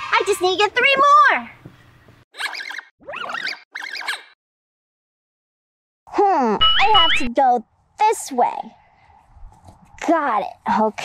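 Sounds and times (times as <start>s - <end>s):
squeaky chirping bursts: 2.4s - 4.4s, 6.6s - 7.3s.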